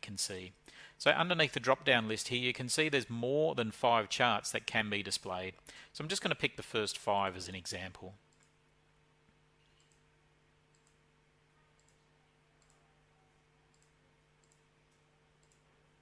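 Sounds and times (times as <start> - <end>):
faint electrical hum: 0.0 - 16.0
faint computer mouse clicks: 9.6 - 10.0, 11.8 - 12.0, 12.6 - 12.8, 13.7 - 15.7.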